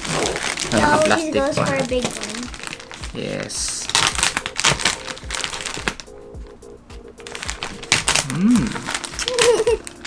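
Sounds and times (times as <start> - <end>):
plastic packaging crinkling: 0.0 - 6.2, 7.2 - 10.0
background music: 0.0 - 10.0.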